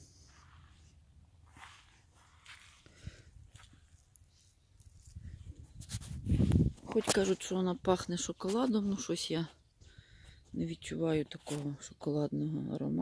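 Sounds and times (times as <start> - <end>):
rustles and clicks of camera: 3.5 - 7.6.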